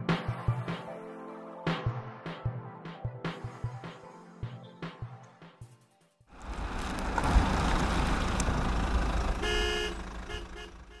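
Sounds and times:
music: 0:00.0 - 0:06.3
vehicle engine rumbling: 0:06.3 - 0:11.0
vehicle horn honking: 0:09.3 - 0:11.0.

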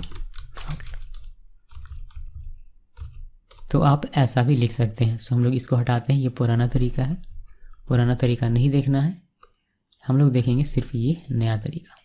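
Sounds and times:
typing on a keyboard: 0:00.0 - 0:03.8, 0:04.7 - 0:08.4.

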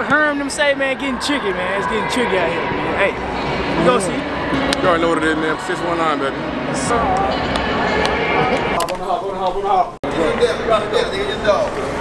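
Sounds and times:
dense hubbub of voices: 0:00.0 - 0:12.0.

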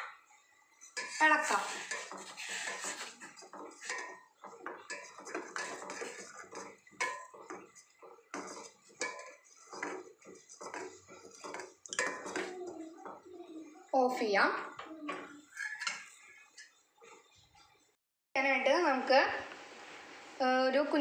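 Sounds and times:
metal spoon scraping steel pan: 0:00.8 - 0:13.3, 0:14.5 - 0:17.3.

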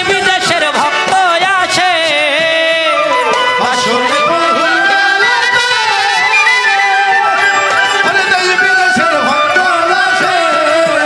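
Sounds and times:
folk band playing: 0:00.0 - 0:11.0
person singing: 0:00.0 - 0:11.0
wavering melody instrument: 0:02.6 - 0:11.0.

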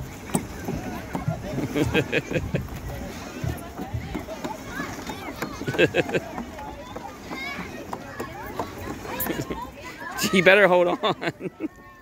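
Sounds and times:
tire spinner knocking and thumping: 0:00.0 - 0:09.7.

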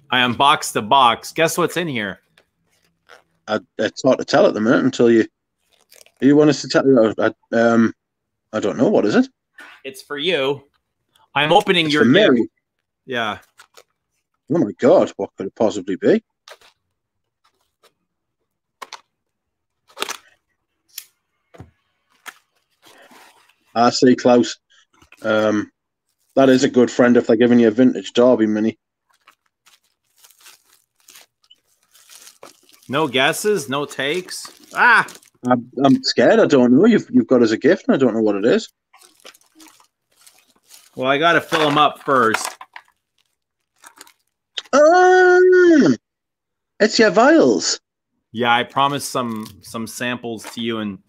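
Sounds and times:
packaging rustling and clicking: 0:13.4 - 0:14.2, 0:29.1 - 0:35.5, 0:39.0 - 0:44.4.

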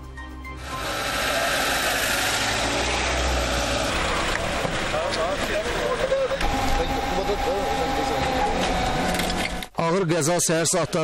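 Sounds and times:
vehicle engine: 0:00.6 - 0:09.7
road noise: 0:00.6 - 0:09.8.

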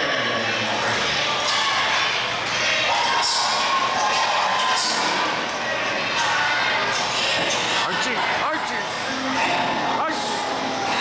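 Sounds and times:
crowd chatter and shouts: 0:00.0 - 0:11.0.

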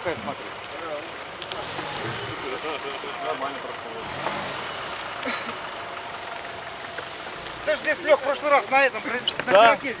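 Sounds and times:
car engine running slowly: 0:00.0 - 0:10.0.

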